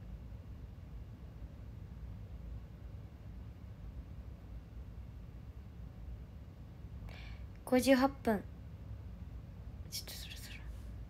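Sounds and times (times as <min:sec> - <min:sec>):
steady low hum: 0:00.0 - 0:11.0
woman whispering: 0:09.9 - 0:10.8.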